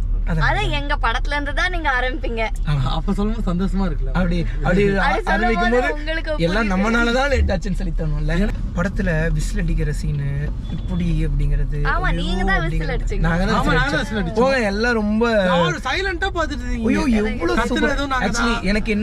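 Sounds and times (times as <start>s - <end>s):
low hum: 0.0s - 11.8s
people talking in a car: 0.2s - 19.0s.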